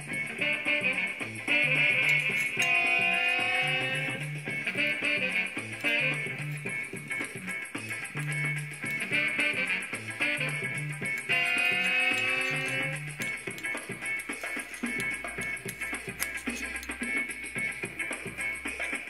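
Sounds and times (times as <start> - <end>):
instrumental background music: 0.0 - 19.0.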